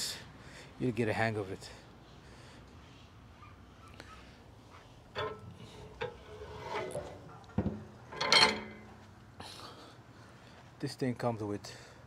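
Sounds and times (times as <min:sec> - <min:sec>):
knocks and scrapes of handling: 0:04.7 - 0:09.1.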